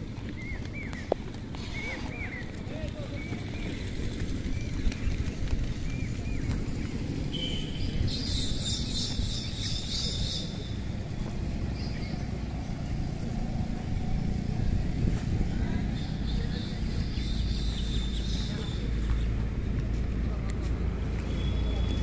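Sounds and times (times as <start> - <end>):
wind rumble on microphone: 0.0 - 21.2.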